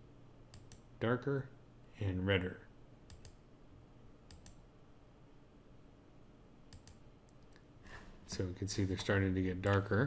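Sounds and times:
computer mouse clicks: 0:00.5 - 0:00.9, 0:03.1 - 0:03.4, 0:04.3 - 0:04.6, 0:06.7 - 0:07.6.

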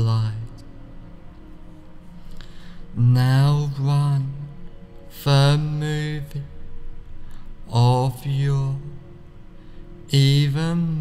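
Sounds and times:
man speaking in slow monotone: 0:00.0 - 0:00.8, 0:02.9 - 0:07.0, 0:07.6 - 0:11.0
faint background music: 0:00.0 - 0:11.0.

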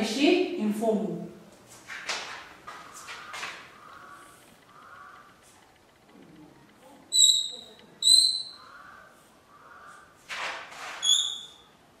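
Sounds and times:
chalk squeaking on a blackboard: 0:10.3 - 0:11.7.

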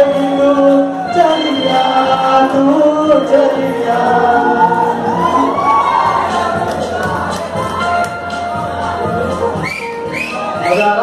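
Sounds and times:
man singing over a pa: 0:00.0 - 0:05.2, 0:10.2 - 0:11.0.

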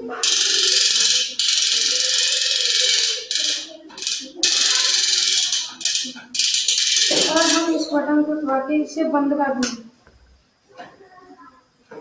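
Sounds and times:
small motor rattling whir: 0:00.1 - 0:07.8.

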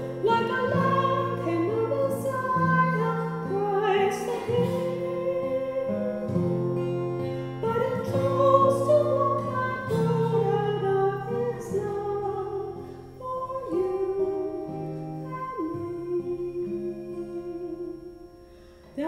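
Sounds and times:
woman singing slow song: 0:00.0 - 0:19.0.

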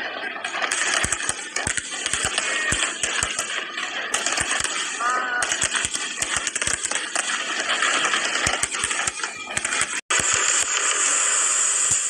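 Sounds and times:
fireworks bursting bangs: 0:00.0 - 0:12.0
fireworks crackling hiss: 0:00.5 - 0:12.0.

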